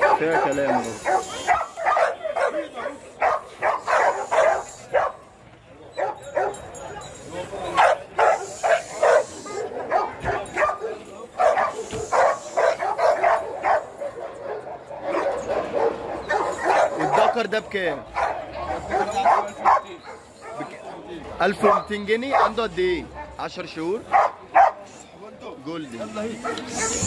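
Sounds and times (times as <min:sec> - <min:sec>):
dogs barking and yipping: 0:00.0 - 0:23.4, 0:24.0 - 0:24.9, 0:26.1 - 0:27.0.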